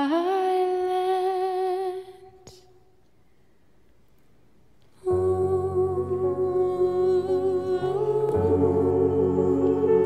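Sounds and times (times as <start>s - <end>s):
choir humming: 5.0s - 10.0s.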